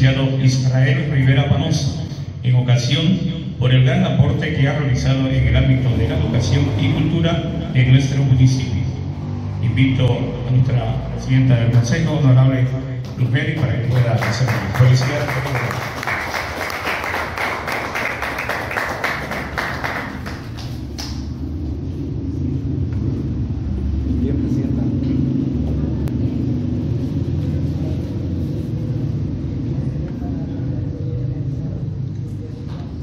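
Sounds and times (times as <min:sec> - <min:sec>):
steady low rumble: 0:00.0 - 0:33.0
audience applauding: 0:13.6 - 0:21.3.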